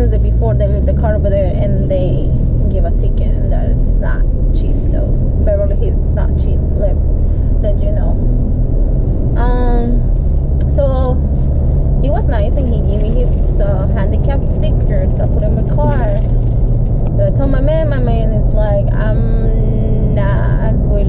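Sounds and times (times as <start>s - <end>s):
person's voice: 0.0s - 7.0s, 7.6s - 8.2s, 9.4s - 11.4s, 12.0s - 16.2s, 17.2s - 21.0s
road and engine rumble inside car: 0.0s - 21.0s.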